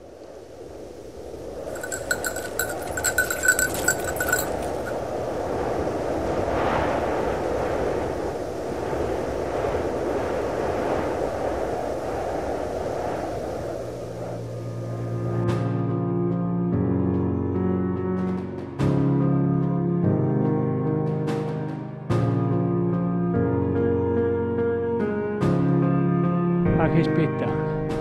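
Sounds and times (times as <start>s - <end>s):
rushing wind-like noise: 0.0s - 15.7s
rapid high ringing ticks: 1.7s - 5.0s.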